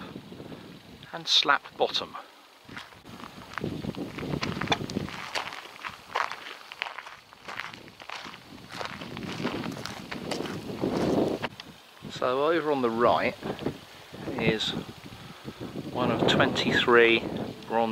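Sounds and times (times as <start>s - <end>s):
footsteps on gravel: 2.7s - 11.5s.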